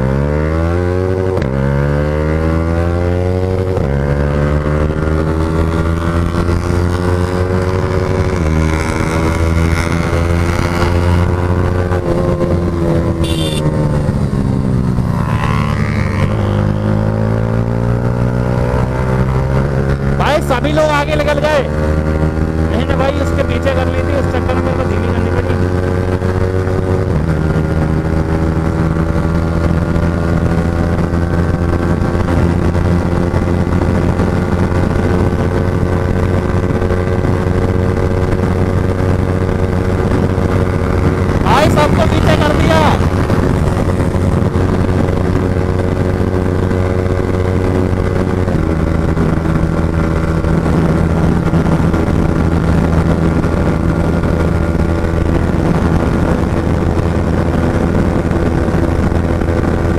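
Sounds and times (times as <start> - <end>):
motorcycle engine at high revs: 0.0 - 59.9
wind and road rush: 0.0 - 59.9.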